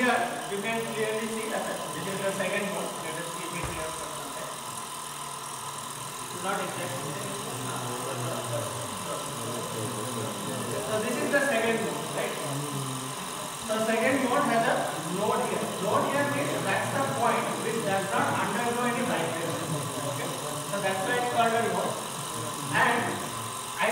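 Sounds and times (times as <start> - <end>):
man talking: 0.0 - 4.6, 6.3 - 23.9
electric motor humming: 0.0 - 23.9.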